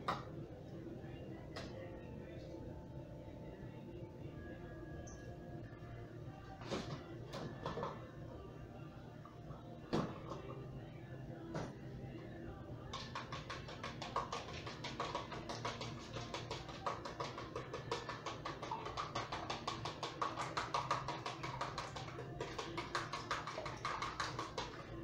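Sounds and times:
utensil beating in plastic bowl: 0:12.9 - 0:25.0.

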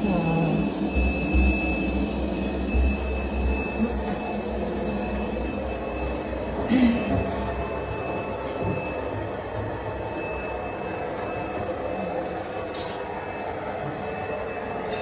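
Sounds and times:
high whine: 0:00.0 - 0:15.0
mechanical hum and rumble: 0:00.0 - 0:15.0.

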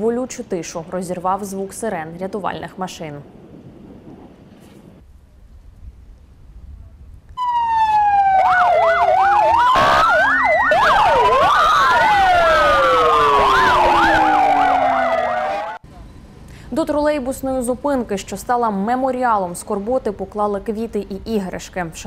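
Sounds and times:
sirens wailing: 0:07.4 - 0:15.8
sirens yelping: 0:07.4 - 0:15.8.

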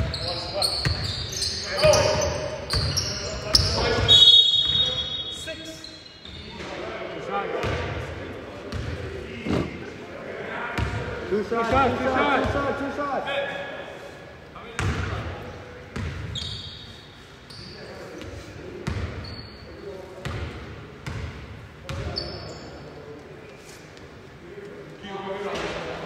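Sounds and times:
sneaker squeaks: 0:00.0 - 0:06.6, 0:16.0 - 0:20.4, 0:21.9 - 0:24.0.

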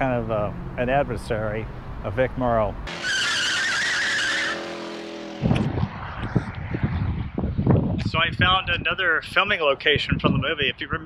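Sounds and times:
car tyres screeching: 0:02.9 - 0:06.5
wind buffeting microphone: 0:05.2 - 0:11.0.

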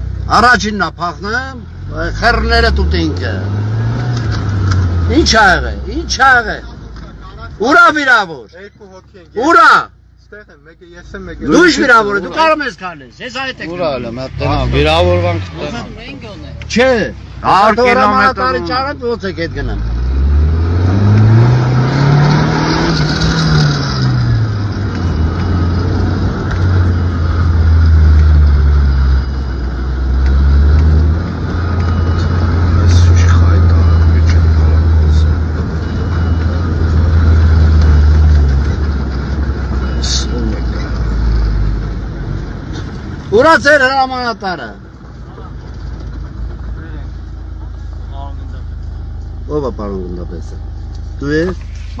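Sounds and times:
vehicle engine driving: 0:00.0 - 0:52.0.

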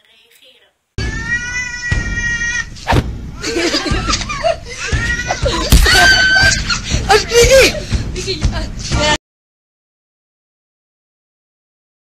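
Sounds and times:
laughter: 0:03.4 - 0:07.8.

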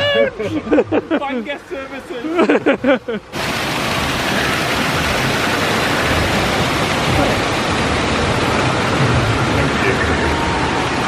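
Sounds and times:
waterfall splashing into pool: 0:03.3 - 0:11.0.

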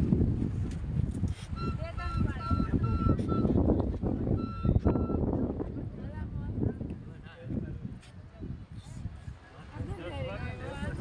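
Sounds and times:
low rumble of wind: 0:00.0 - 0:11.0
high electronic beeping tone: 0:01.6 - 0:03.6.

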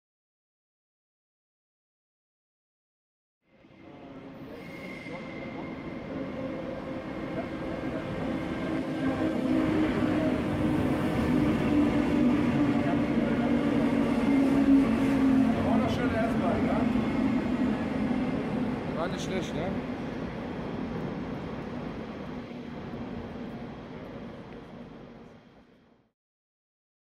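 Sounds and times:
electric train passing: 0:03.5 - 0:25.9.

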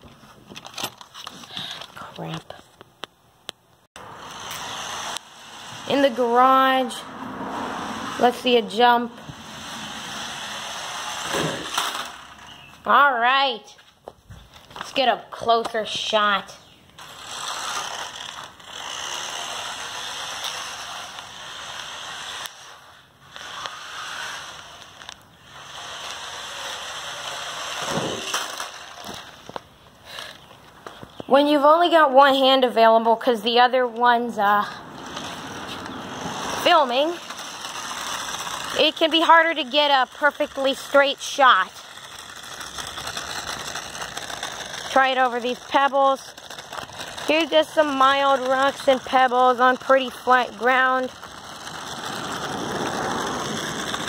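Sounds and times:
toy truck motor whirring: 0:04.0 - 0:13.2, 0:14.6 - 0:31.0, 0:34.1 - 0:54.0.

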